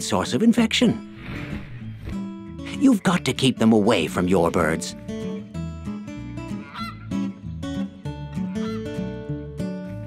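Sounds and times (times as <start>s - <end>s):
acoustic guitar background music: 0.0s - 10.0s
cartoon waterfowl honk: 6.5s - 7.3s, 8.5s - 9.0s.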